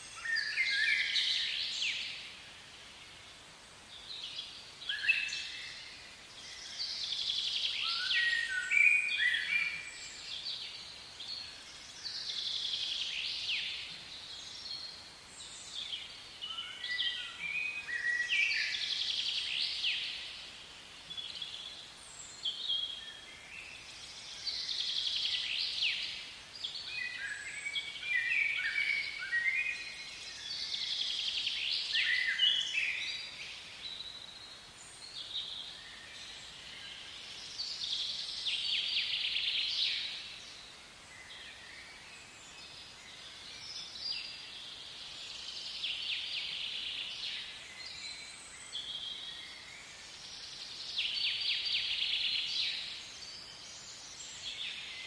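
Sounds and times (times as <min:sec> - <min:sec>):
faint background hiss: 0:00.0 - 0:55.0.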